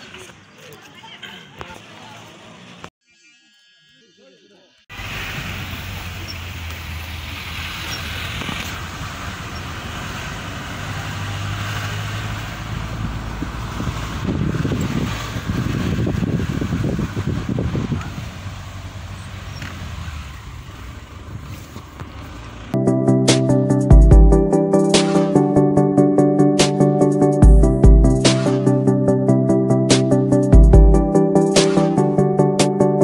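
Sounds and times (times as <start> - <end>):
car engine and road noise: 0.0 - 2.9, 4.7 - 33.0.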